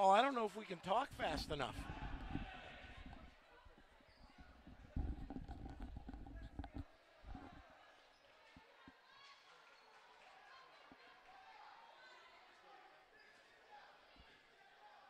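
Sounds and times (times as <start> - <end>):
faint voices: 0.0 - 9.2.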